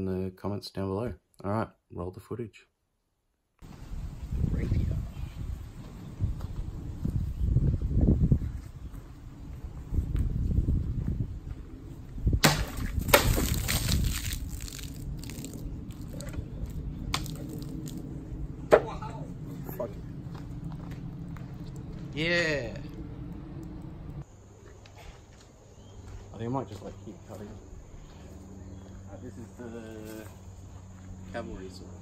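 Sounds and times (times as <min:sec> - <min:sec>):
sword slicing plastic jug: 0:12.4 - 0:15.0
water splashing: 0:12.4 - 0:16.3.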